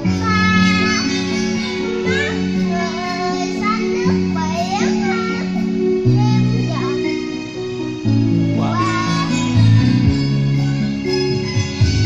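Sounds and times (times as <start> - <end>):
child singing into microphone: 0.0 - 5.4, 8.6 - 9.6
karaoke backing track: 0.0 - 12.0.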